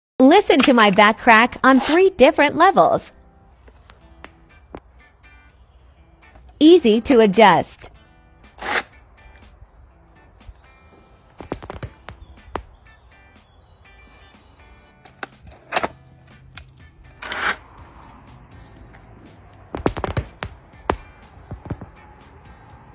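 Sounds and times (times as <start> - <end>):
faint background music: 0.2 - 22.9.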